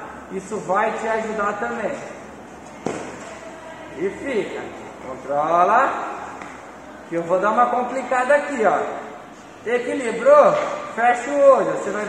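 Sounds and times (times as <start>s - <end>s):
hall background hum: 0.0s - 12.0s.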